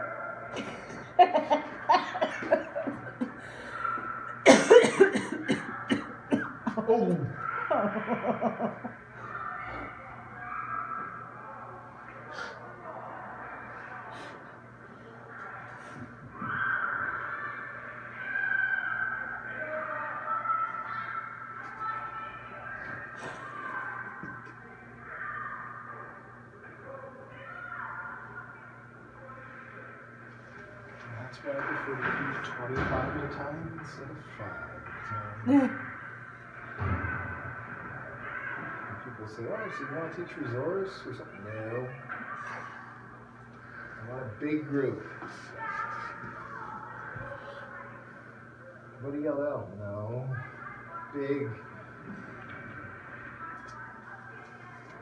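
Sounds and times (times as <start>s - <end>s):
faint low hum: 0.0s - 55.0s.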